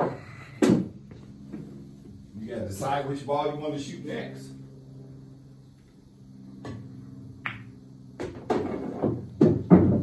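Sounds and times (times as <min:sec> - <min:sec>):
cue tip tapping ball: 0:07.4 - 0:08.8
ball rolling inside table: 0:07.5 - 0:10.0.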